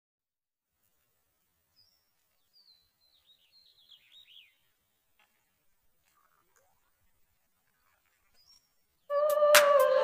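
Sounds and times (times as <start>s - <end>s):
faint outdoor background noise: 0.6s - 10.0s
bird song whistles and chirps: 1.8s - 4.6s, 8.4s - 10.0s.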